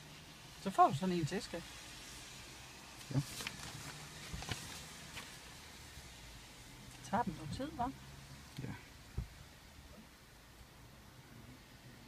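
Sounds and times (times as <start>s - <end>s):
papers rustling and clicking: 3.2s - 5.4s.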